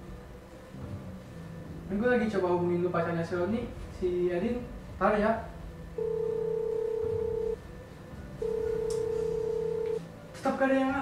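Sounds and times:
telephone ringback beeps: 0:06.0 - 0:07.6, 0:08.4 - 0:10.0.

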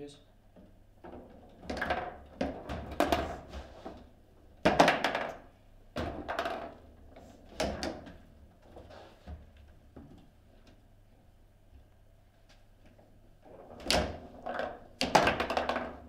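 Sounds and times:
table football knocks and clacks: 0:01.0 - 0:08.3, 0:13.8 - 0:16.0.

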